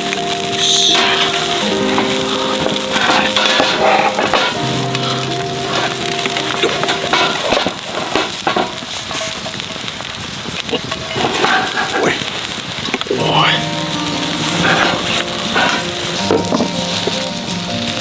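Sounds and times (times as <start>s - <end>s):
background music of held notes: 0.0s - 8.6s, 13.2s - 18.0s
food sizzling in skillet: 0.0s - 18.0s.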